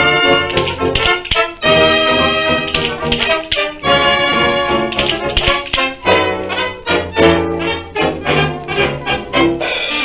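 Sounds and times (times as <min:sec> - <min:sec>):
sharp percussive accents: 0:00.0 - 0:06.1.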